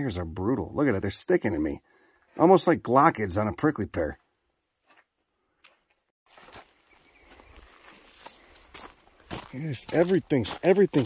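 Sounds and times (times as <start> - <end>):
footsteps through dry grass: 4.6 - 11.0.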